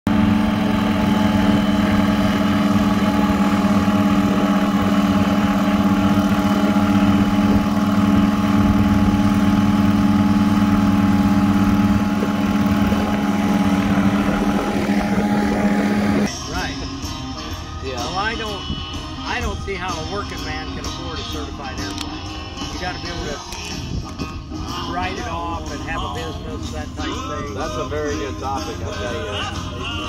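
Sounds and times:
propeller plane engine humming: 0.0 - 30.0.

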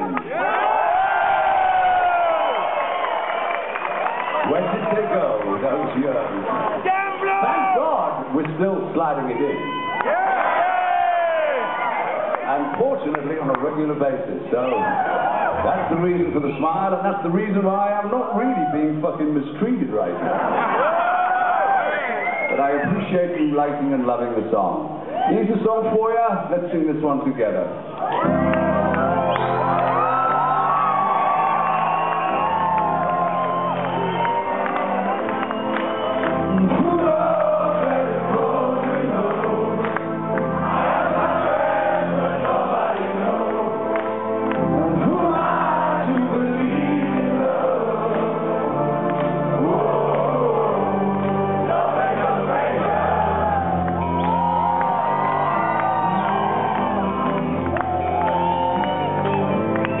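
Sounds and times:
audience whooping: 0.0 - 5.8, 9.3 - 13.0, 14.6 - 16.7, 20.2 - 23.0, 28.0 - 44.0, 49.6 - 60.0
sustained keyboard chords: 28.2 - 60.0
audience singing along: 35.5 - 54.3
man singing lead vocal: 36.5 - 39.8, 44.9 - 48.9, 49.6 - 51.2.

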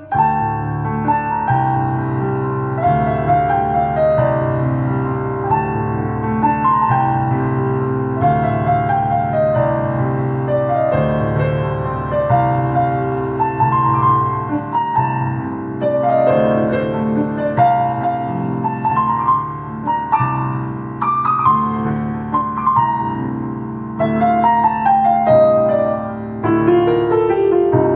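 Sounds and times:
electronic keyboard piano melody: 0.0 - 27.9.

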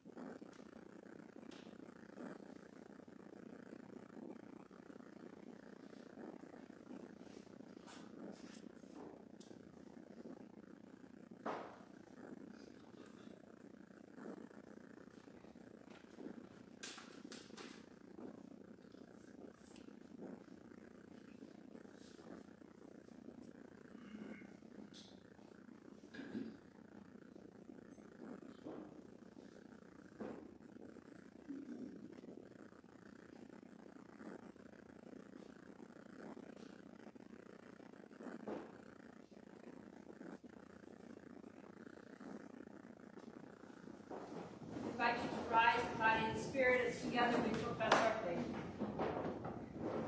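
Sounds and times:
steady low hum: 0.0 - 50.0.

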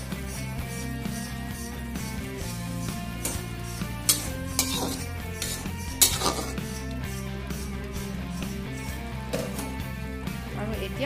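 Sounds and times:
spatula scraping a metal pot: 0.0 - 9.9
background music: 0.0 - 11.0.

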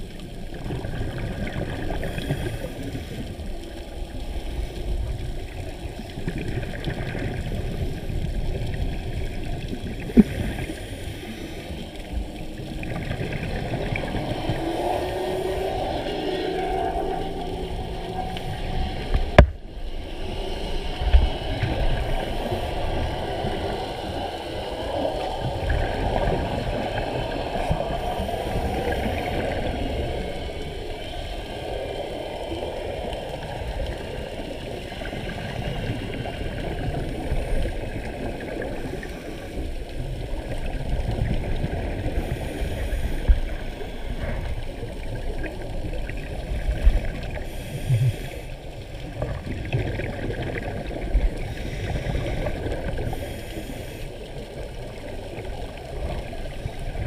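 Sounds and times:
muffled underwater rumble: 0.0 - 57.0.

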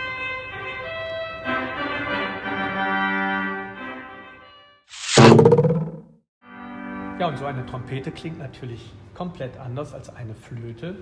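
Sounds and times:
short loud burst: 5.0 - 6.0.

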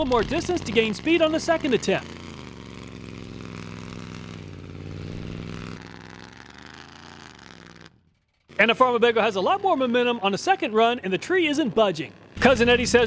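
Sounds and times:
motorhome engine accelerating: 0.0 - 13.0.

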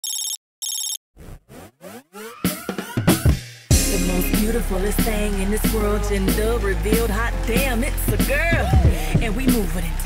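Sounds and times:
telephone ringing: 0.0 - 1.0.

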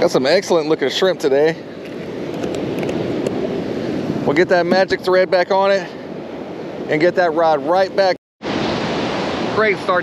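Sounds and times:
ocean surf rushing: 0.0 - 10.0
wind: 0.0 - 10.0.

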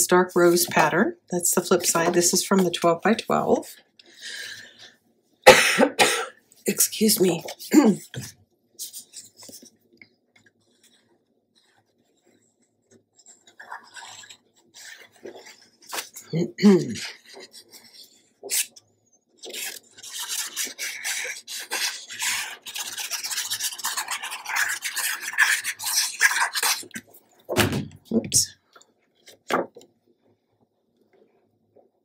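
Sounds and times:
person clearing throat: 5.5 - 6.4
glue applicator scraping paper: 19.4 - 27.1.

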